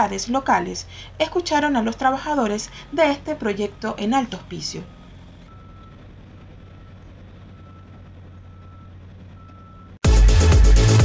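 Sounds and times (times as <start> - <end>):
steady low hum: 0.0 - 10.0
vehicle reversing alarm beeping: 1.3 - 10.0.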